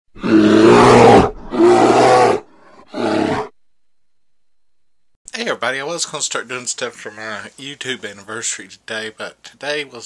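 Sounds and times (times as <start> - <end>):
bear roaring: 0.2 - 3.6.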